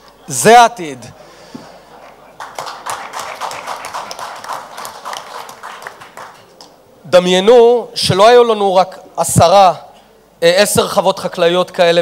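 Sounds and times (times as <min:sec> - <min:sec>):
audience applauding: 0:02.0 - 0:06.8.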